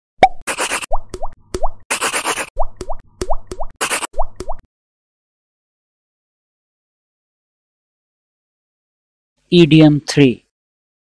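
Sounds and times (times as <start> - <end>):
rising bloop pops: 0.2 - 1.8, 2.6 - 4.7.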